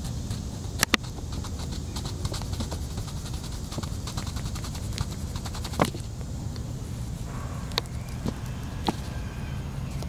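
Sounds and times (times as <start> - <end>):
coloring strokes on paper: 0.0 - 6.0
steady low rumble: 0.0 - 10.0.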